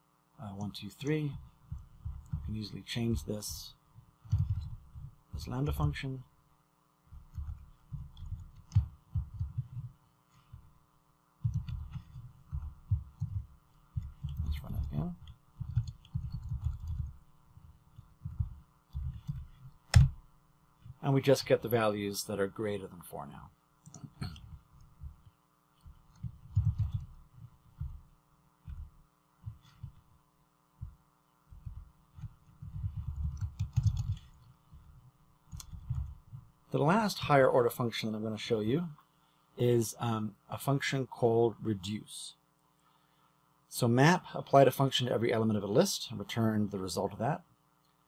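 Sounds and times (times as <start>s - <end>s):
electrical hum: 0.0s - 48.0s
keyboard keys thumping: 1.2s - 6.1s, 7.2s - 10.7s, 11.4s - 21.0s, 24.1s - 30.1s, 30.8s - 36.5s
low thuds and bumps: 7.2s - 10.7s, 11.4s - 21.0s, 25.9s - 28.1s.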